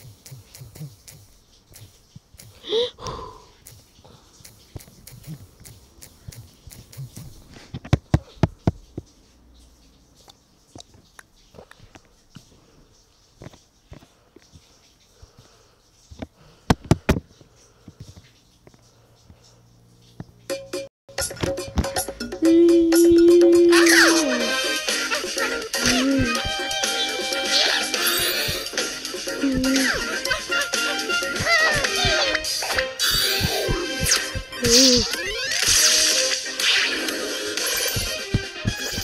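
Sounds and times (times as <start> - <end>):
video game music: 20.5 - 39.0.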